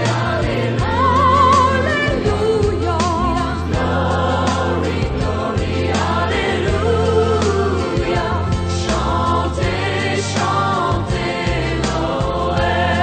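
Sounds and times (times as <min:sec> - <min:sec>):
choir singing: 0:00.0 - 0:13.0
voice singing with wide vibrato: 0:00.0 - 0:13.0.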